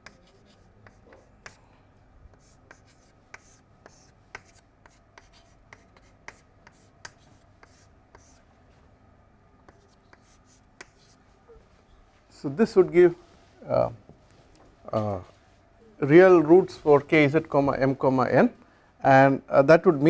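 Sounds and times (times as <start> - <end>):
chalk tapping and scratching: 0.0 - 1.6, 2.3 - 8.4, 9.6 - 11.2.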